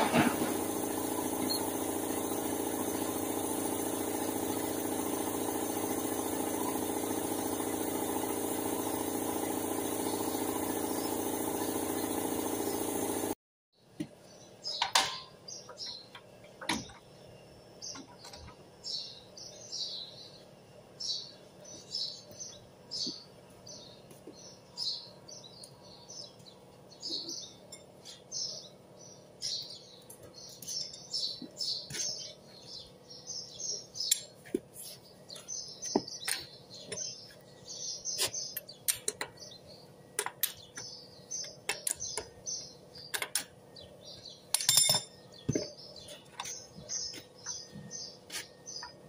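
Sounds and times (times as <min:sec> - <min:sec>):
birds chirping: 0:00.0 - 0:08.4, 0:14.0 - 0:49.0
wrench clinking on lug nuts: 0:44.5 - 0:45.2.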